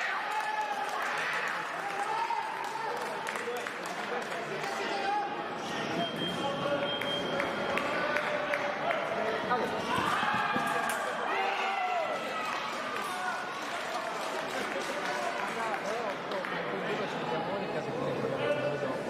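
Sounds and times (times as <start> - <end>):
voices in sports hall: 0.0 - 19.0.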